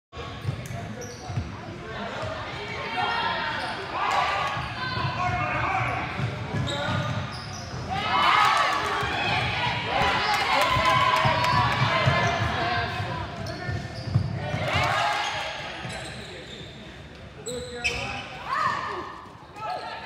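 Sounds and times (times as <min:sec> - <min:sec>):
sneakers squeaking: 0:00.2 - 0:20.0.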